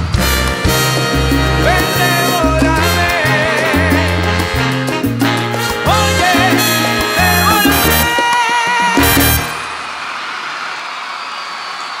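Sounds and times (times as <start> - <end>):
audience applauding: 0.0 - 12.0.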